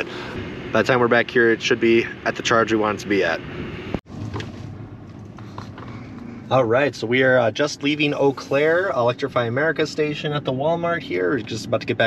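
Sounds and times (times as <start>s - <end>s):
low electric car cabin hum: 0.0s - 12.0s.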